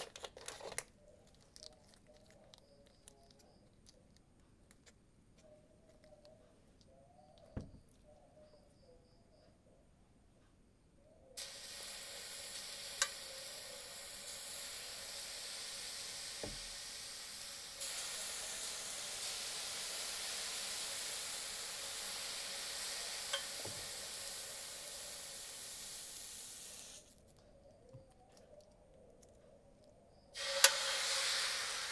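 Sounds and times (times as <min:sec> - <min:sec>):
water sizzling on hot plate: 0:11.4 - 0:27.1, 0:30.4 - 0:31.9.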